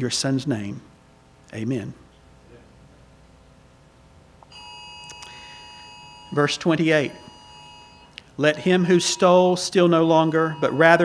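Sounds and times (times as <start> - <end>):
electronic alert beep: 4.6 - 11.0.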